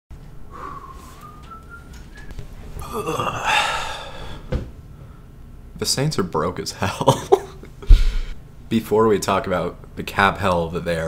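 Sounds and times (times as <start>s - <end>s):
person whistling rising note: 0.5s - 2.3s.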